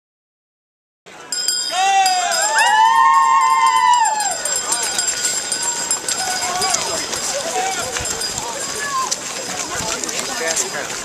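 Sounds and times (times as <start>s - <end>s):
footsteps on pavement: 4.5s - 11.0s.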